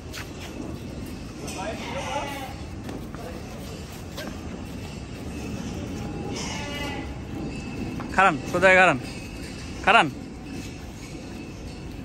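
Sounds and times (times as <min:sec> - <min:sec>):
cattle yard background noise: 0:00.0 - 0:12.0.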